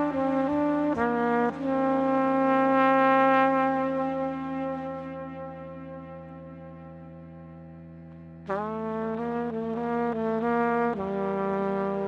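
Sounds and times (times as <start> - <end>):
solo trumpet melody: 0.0 - 7.8, 8.5 - 12.0.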